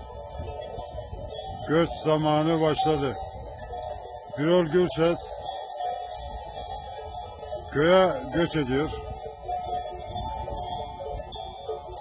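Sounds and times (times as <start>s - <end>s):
sheep bells jingling: 0.0s - 12.0s.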